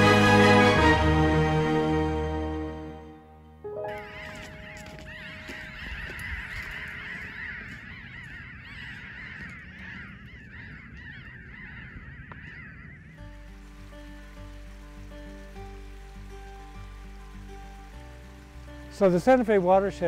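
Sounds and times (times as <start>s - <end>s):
flock of birds chattering: 3.9s - 20.0s.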